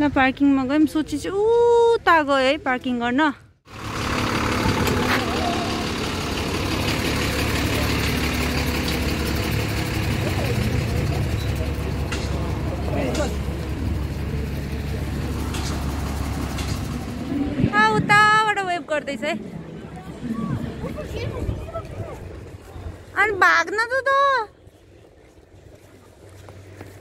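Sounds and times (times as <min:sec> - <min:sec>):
truck diesel engine running: 0:03.6 - 0:23.3
faint voices: 0:19.0 - 0:23.2.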